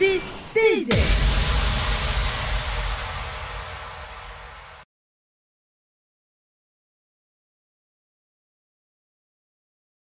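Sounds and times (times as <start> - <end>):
burst of white noise: 0.9 - 4.8
deep low boom: 0.9 - 4.8.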